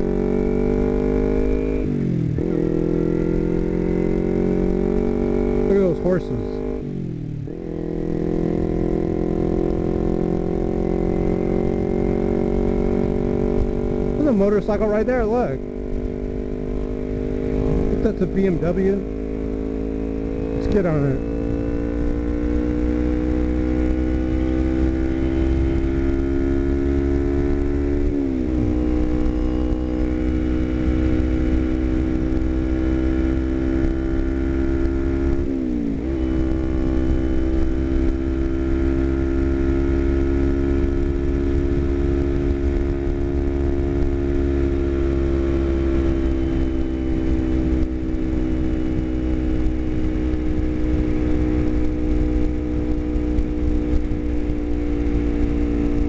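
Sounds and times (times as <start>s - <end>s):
motorcycle engine running: 0.0s - 56.0s
wind rumble on microphone: 15.5s - 56.0s.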